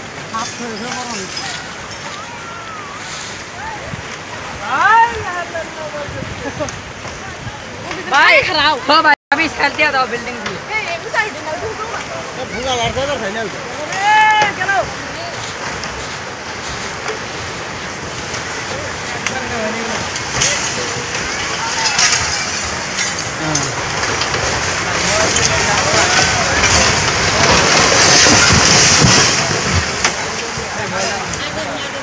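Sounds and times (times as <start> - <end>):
churning water and crumbling debris: 0.0 - 32.0
crowd shouting: 20.5 - 23.8, 24.9 - 28.7.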